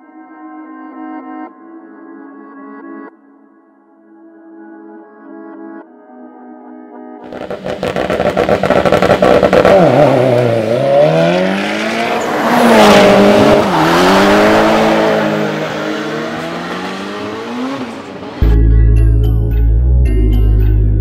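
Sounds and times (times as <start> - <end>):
race car engine at full throttle: 7.2 - 18.6.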